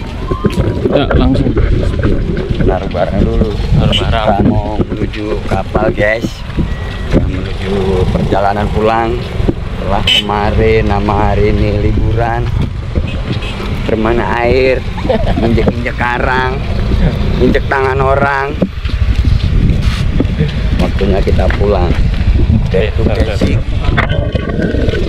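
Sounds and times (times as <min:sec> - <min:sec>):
steady low rumble: 0:00.0 - 0:25.0
people talking: 0:00.3 - 0:06.5, 0:07.1 - 0:12.5, 0:13.9 - 0:18.7, 0:20.3 - 0:25.0.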